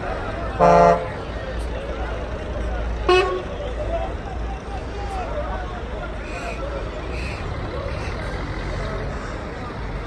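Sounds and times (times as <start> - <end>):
bus engines idling: 0.0 - 10.0
busy bus station noise: 0.0 - 10.0.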